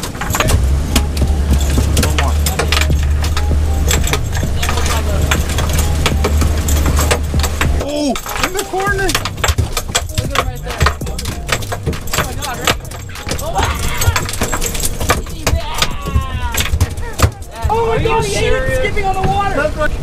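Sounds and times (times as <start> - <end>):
sharp knocks and rattles: 0.0 - 18.3
outboard motors droning: 0.0 - 20.0
water rushing along hull: 0.0 - 20.0
person shouting: 13.4 - 14.3, 15.5 - 18.9.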